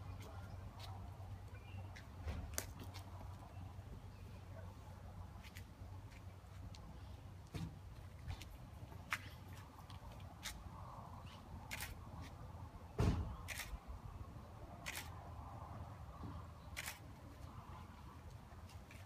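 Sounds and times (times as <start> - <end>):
camera shutter clicks: 11.7 - 12.0, 13.4 - 13.8, 14.8 - 15.1, 16.8 - 17.0
dull thump: 13.0 - 13.4.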